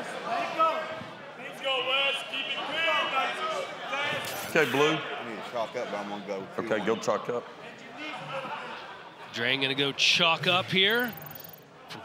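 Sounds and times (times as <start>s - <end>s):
voices talking: 1.6s - 12.0s.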